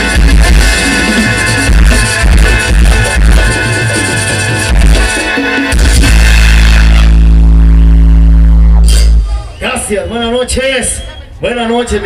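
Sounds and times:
live band playing dance music: 0.0s - 12.0s.

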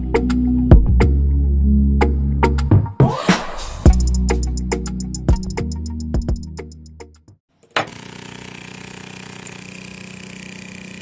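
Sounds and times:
small electric motor humming: 7.6s - 11.0s.

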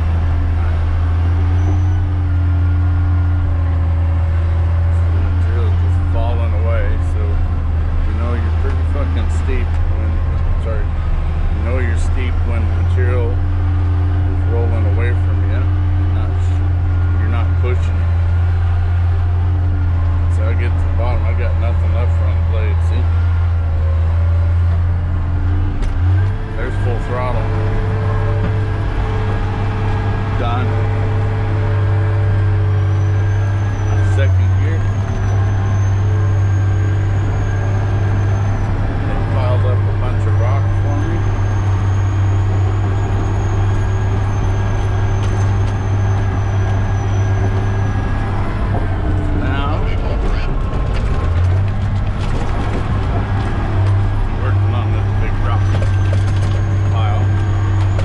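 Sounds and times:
diesel engine drone under load: 0.0s - 58.0s.

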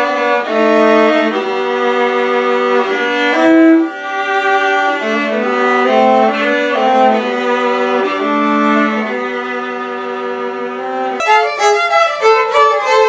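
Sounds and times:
violin duet: 0.0s - 13.0s.

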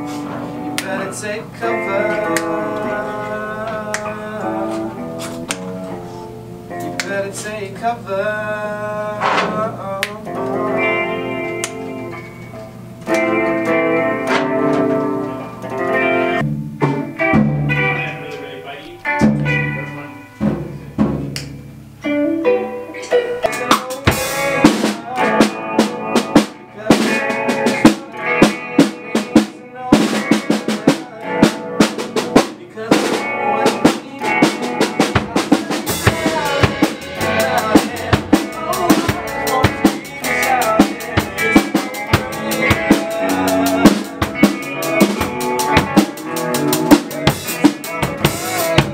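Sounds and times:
electric guitar chords: 0.0s - 48.9s
bass chords: 9.6s - 22.1s, 34.3s - 48.9s
drum kit snare and rimshot hits: 16.4s - 18.0s, 20.4s - 21.6s, 23.4s - 48.9s.

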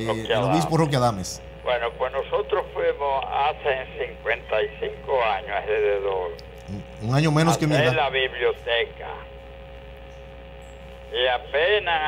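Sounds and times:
faint steady tones: 0.0s - 12.0s
telephone line hum: 0.0s - 12.0s.

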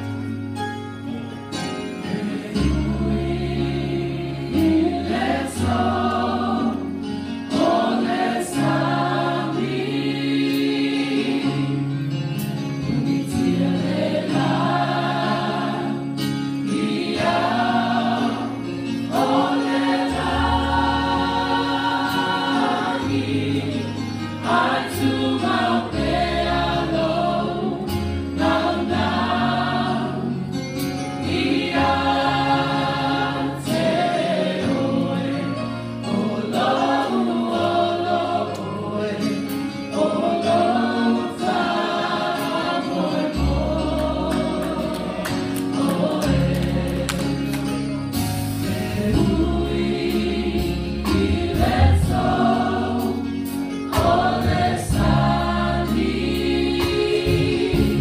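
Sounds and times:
electric keyboard: 0.0s - 58.0s
choir singing gospel song: 1.5s - 58.0s.

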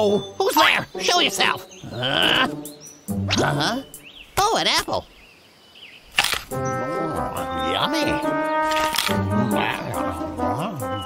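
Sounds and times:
music: 0.0s - 4.1s, 6.5s - 11.0s
faint bird chirp: 0.0s - 8.6s.

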